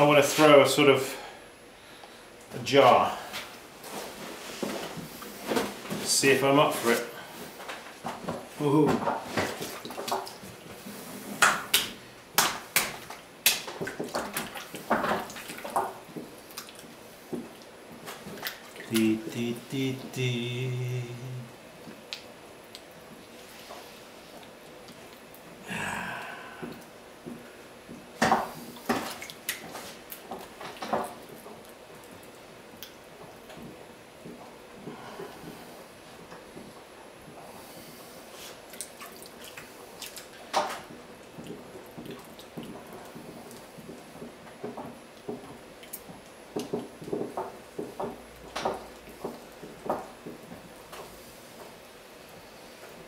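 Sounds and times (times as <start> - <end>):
hands squelching wet clay: 28.6 - 33.0, 38.4 - 40.5.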